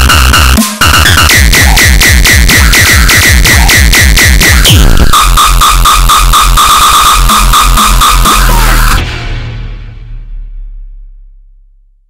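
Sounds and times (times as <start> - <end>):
pulsing high synth tone: 0.0 - 9.0
distorted kick drum pounding: 0.0 - 9.1.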